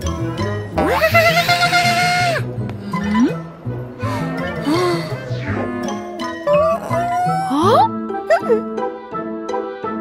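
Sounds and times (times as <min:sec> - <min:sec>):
cartoon girl wailing: 0:00.8 - 0:02.4, 0:06.5 - 0:08.6.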